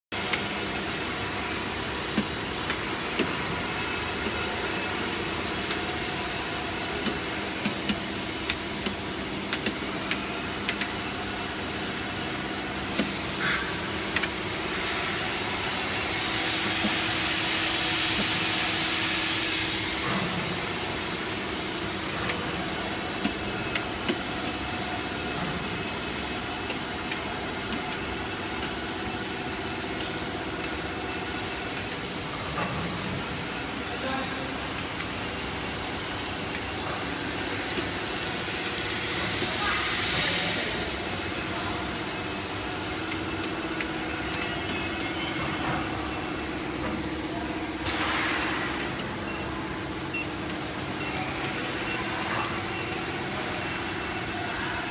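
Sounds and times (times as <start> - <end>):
machine mechanical drone: 0.2 - 54.9
hiss: 14.8 - 20.6, 37.8 - 41.1.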